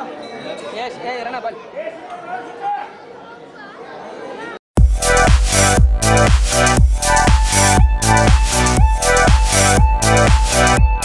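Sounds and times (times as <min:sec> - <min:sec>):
crowd chatter: 0:00.0 - 0:04.6
electronic music with heavy beat: 0:04.8 - 0:11.0.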